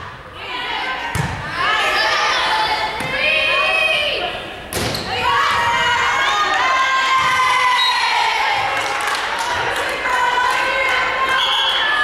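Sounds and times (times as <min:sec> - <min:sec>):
girls shouting and cheering: 0:00.4 - 0:04.4, 0:05.1 - 0:12.0.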